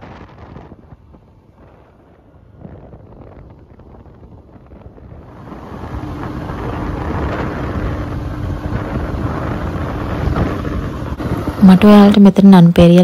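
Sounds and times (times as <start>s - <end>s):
steady low hum: 0.0s - 13.0s
wind rushing over microphone: 0.0s - 13.0s.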